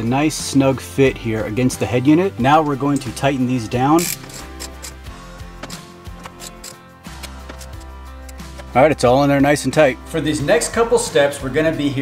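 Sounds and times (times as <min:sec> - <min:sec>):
background music: 0:00.0 - 0:12.0
socket ratchet clicking: 0:04.0 - 0:08.7.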